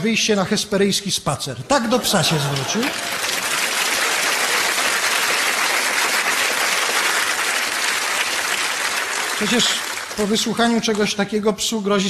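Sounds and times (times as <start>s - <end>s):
audience applauding: 1.8s - 11.2s.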